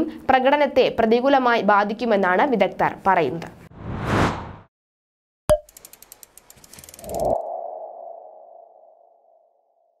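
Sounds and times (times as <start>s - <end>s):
quick run of clicks: 5.6s - 7.3s.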